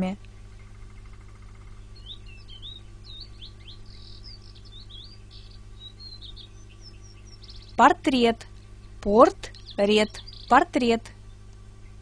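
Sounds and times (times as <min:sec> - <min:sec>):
steady low hum: 0:00.0 - 0:12.0
small songbird twittering: 0:00.5 - 0:07.8, 0:08.4 - 0:12.0.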